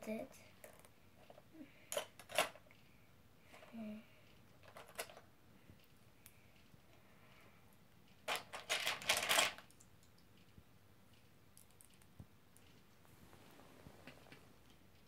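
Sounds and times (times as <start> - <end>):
plastic bricks rattling in a bin: 8.3 - 9.6.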